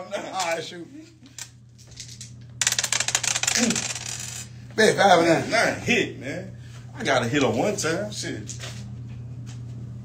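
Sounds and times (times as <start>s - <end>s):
dice rattling and clattering: 1.9s - 4.5s.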